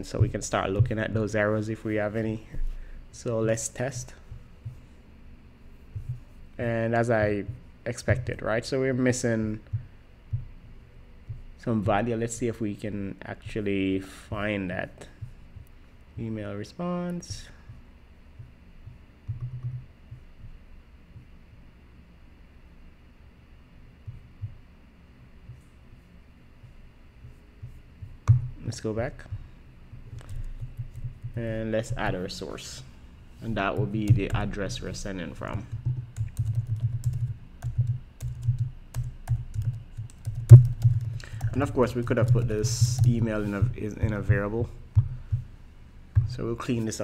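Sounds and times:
typing on computer keyboard: 0:35.7 - 0:43.1.

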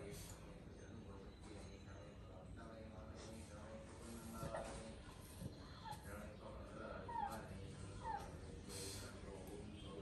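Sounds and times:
dog whining: 0:07.0 - 0:08.6.

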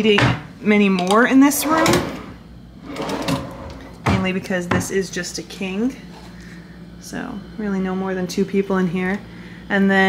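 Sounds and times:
drawer sliding shut: 0:01.6 - 0:02.3, 0:02.9 - 0:03.9.

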